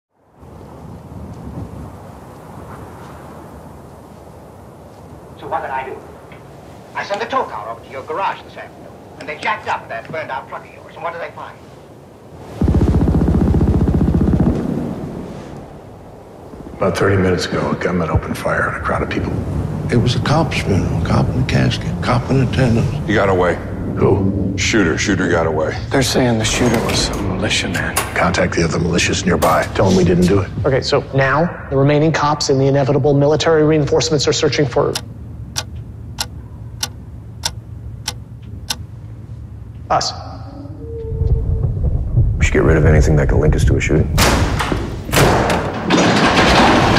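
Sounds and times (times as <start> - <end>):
sharp clock-like ticks: 35.0 - 38.8.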